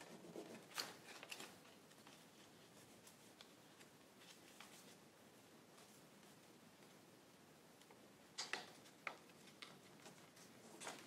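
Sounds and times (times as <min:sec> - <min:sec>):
paper rustle: 0:00.0 - 0:05.1.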